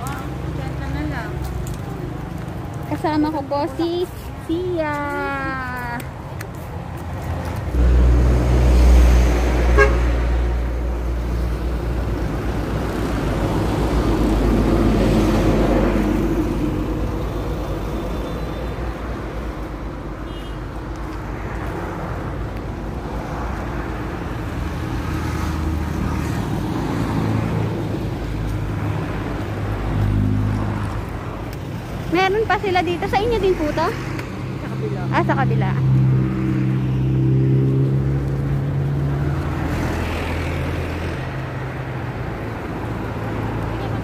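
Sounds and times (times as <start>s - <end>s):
traffic engine and road rumble: 0.0s - 44.0s
car horn toots: 9.7s - 10.1s.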